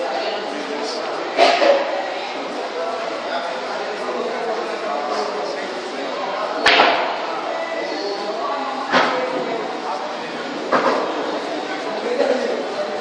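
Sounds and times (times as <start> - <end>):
murmur of voices: 0.0 - 13.0
pool cue striking ball: 6.6 - 7.4.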